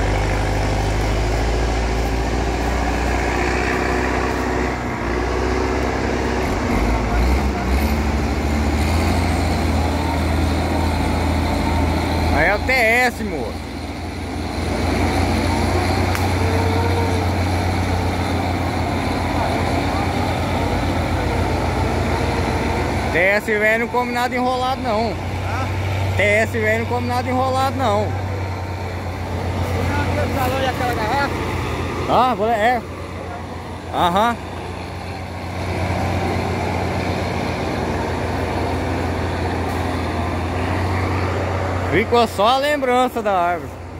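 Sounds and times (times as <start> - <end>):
diesel engine under load: 0.0 - 43.9.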